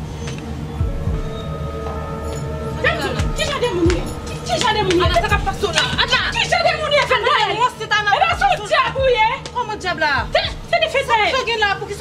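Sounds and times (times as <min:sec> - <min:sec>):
sustained synth notes: 0:00.0 - 0:07.8
deep bass hits dropping in pitch: 0:00.8 - 0:06.4.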